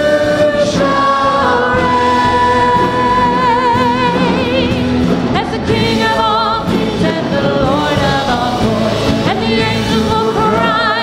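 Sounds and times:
band and congregation singing hymn: 0.0s - 11.0s.

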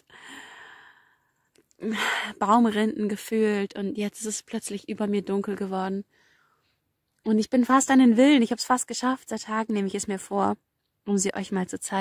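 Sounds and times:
woman speaking: 1.8s - 6.0s, 7.2s - 12.0s.

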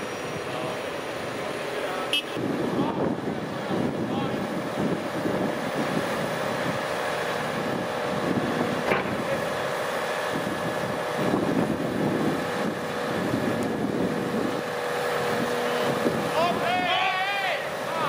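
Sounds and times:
excavator diesel engine running: 0.0s - 18.0s.

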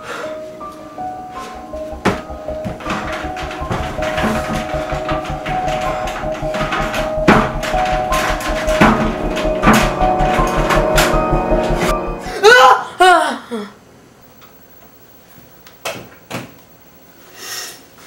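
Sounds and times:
film score music: 1.0s - 12.6s
sharp percussive hits: 1.6s - 12.4s.

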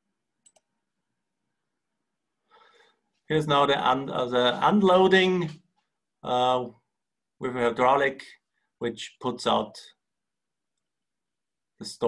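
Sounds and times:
computer mouse clicks: 0.4s - 0.7s.

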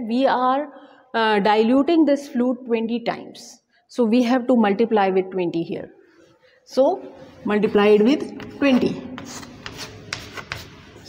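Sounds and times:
chalk scratching on chalkboard: 8.4s - 11.0s
chalk tapping on chalkboard: 8.4s - 11.0s.

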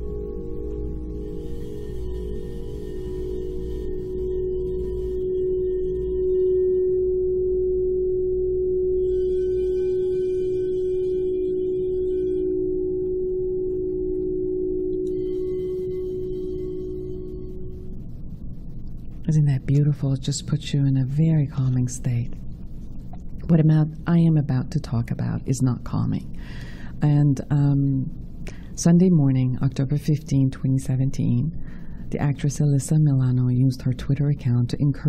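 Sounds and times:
singing bowl ringing: 0.0s - 19.1s.

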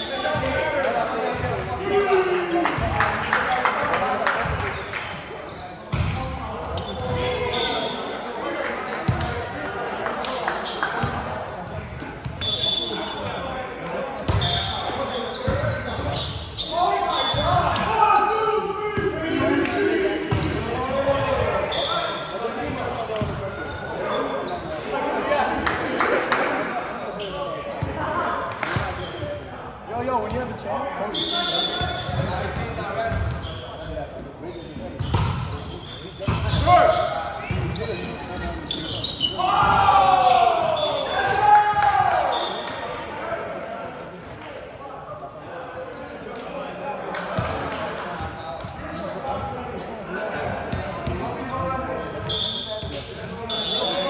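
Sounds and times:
players calling out: 34.6s - 43.2s.

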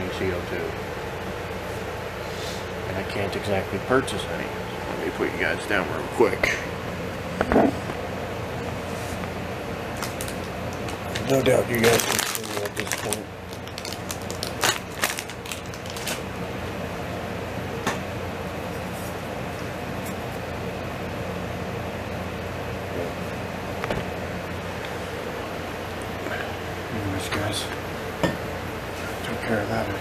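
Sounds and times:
appliance humming: 0.0s - 30.0s
plastic bag crinkling: 10.0s - 16.3s.

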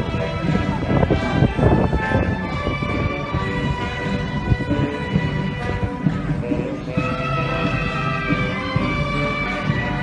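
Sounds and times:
wind buffeting microphone: 0.0s - 7.7s
wind band playing: 0.0s - 10.0s.

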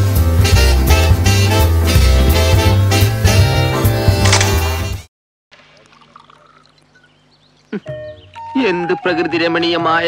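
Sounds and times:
drink pouring into a glass: 5.5s - 7.0s.

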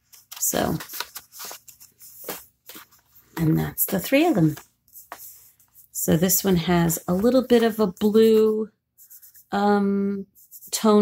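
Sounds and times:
paper rustling: 0.0s - 5.9s.

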